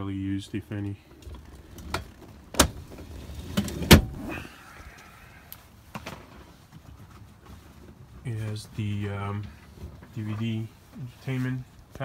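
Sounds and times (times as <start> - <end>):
handling noise in vehicle cabin: 0.8 - 5.0, 5.6 - 12.0.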